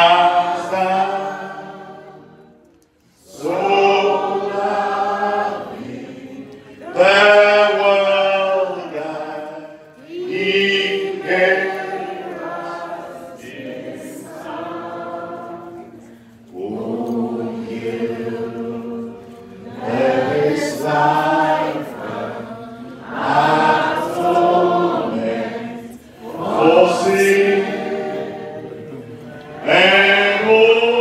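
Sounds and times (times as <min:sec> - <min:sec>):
group singing worship song: 0:00.0 - 0:31.0.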